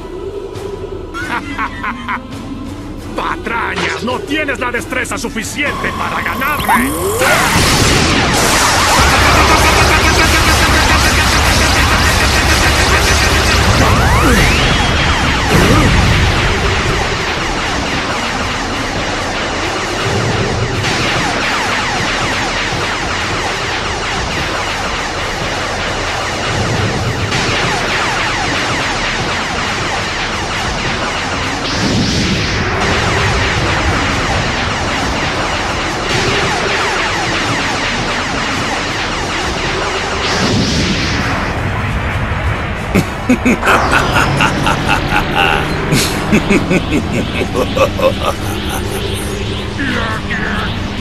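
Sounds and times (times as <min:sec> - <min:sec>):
dramatic background music: 0:00.0 - 0:51.0
energy blasts and explosions: 0:00.0 - 0:51.0.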